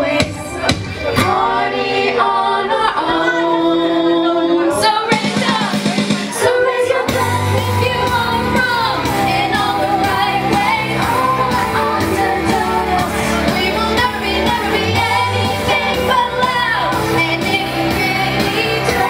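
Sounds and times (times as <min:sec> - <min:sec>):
woman singing into a microphone: 0:00.0 - 0:19.0.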